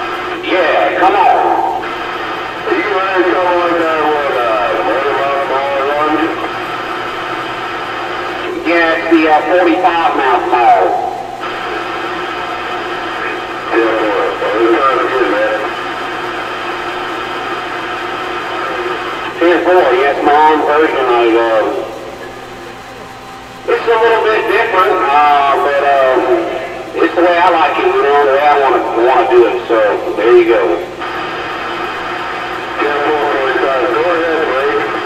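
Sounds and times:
steady radio hiss: 0:00.0 - 0:35.0
voices over radio speaker: 0:00.0 - 0:35.0.

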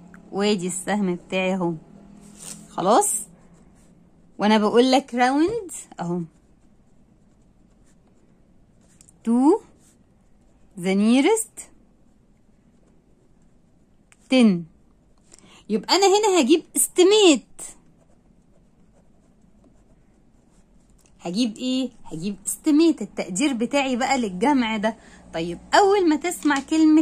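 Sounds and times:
pen scratching on paper: 0:02.2 - 0:14.0, 0:15.9 - 0:22.8.

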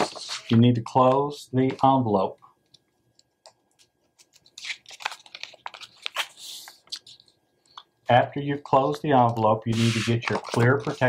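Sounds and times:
paper envelope rustling: 0:04.2 - 0:07.3, 0:09.7 - 0:11.0.

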